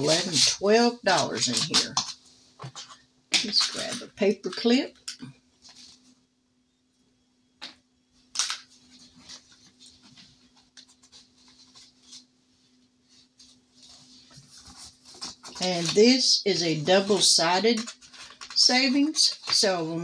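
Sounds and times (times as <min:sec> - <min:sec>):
paper rustling: 0:00.0 - 0:04.0, 0:08.4 - 0:20.0
faint steady hum: 0:00.0 - 0:20.0
scratching and clicking handling: 0:13.4 - 0:16.2, 0:17.0 - 0:19.8.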